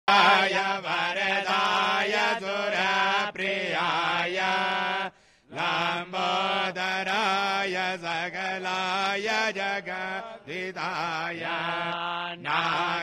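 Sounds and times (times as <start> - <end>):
mantras being chanted: 0.1 - 13.0.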